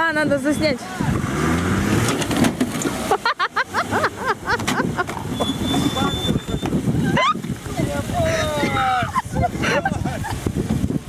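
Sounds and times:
engines straining: 0:00.0 - 0:10.6
water sloshing: 0:00.4 - 0:11.0
people yelling and whooping: 0:05.6 - 0:10.3.

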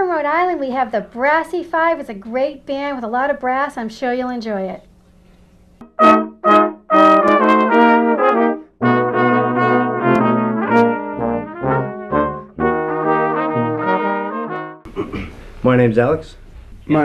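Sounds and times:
low bass line: 0:05.8 - 0:14.8
brass quintet playing chords: 0:05.8 - 0:14.9.

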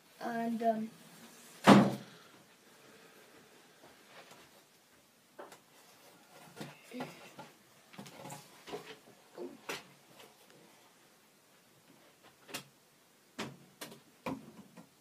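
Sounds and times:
scrapes of handled furnishings: 0:05.5 - 0:10.8.

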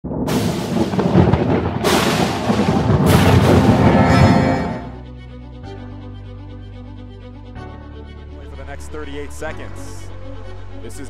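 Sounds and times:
thunder cracks and rumble: 0:00.0 - 0:05.0
dramatic music: 0:00.1 - 0:11.0.

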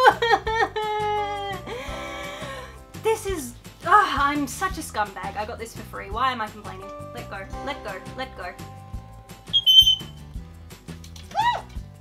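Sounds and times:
parrot whistle-like call: 0:09.5 - 0:10.2.

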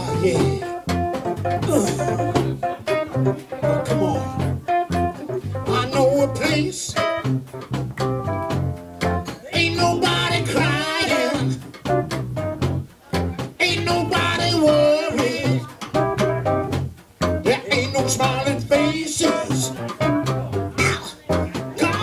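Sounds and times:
person singing wordless vocal: 0:00.0 - 0:00.9, 0:01.6 - 0:03.0, 0:03.6 - 0:04.8, 0:05.6 - 0:07.1, 0:09.3 - 0:11.7, 0:13.6 - 0:15.9, 0:17.4 - 0:20.0, 0:20.8 - 0:22.0
soul band groove: 0:00.0 - 0:22.0.

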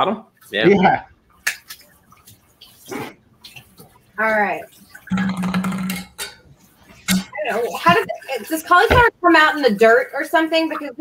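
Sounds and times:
water dripping and splashing: 0:01.2 - 0:11.0.

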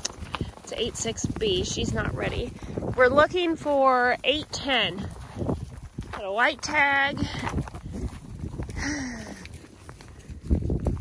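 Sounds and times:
footsteps on snow and hay: 0:00.0 - 0:11.0.

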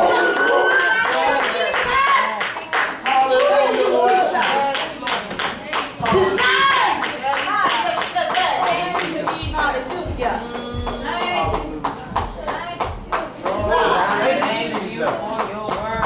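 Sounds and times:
congregation clapping hands: 0:00.0 - 0:16.0
people singing: 0:08.7 - 0:16.0.

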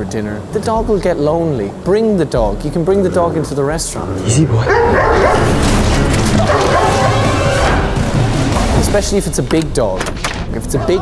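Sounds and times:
dog barking and snarling: 0:04.1 - 0:07.8.

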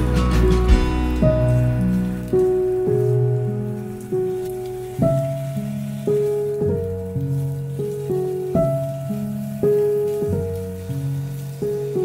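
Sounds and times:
gentle plucked melody: 0:00.0 - 0:12.0
meat sizzling in a pan: 0:00.0 - 0:12.0.

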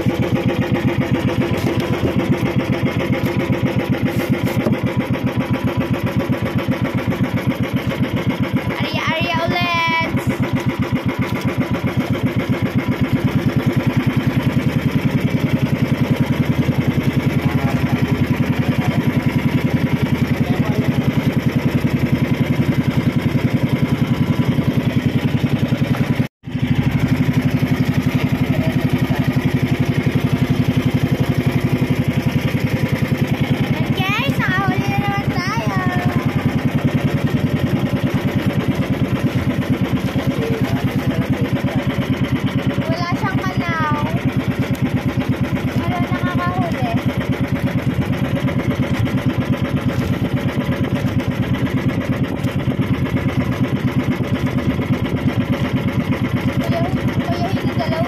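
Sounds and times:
boat engine running: 0:00.0 - 0:58.0.

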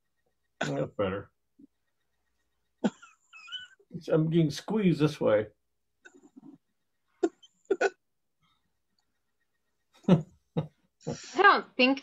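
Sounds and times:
man chuckling over video call: 0:10.0 - 0:11.4.

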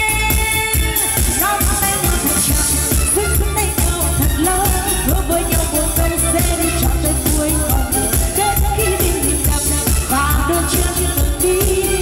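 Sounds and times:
pop backing track: 0:00.0 - 0:12.0
woman singing into microphone: 0:00.0 - 0:12.0.

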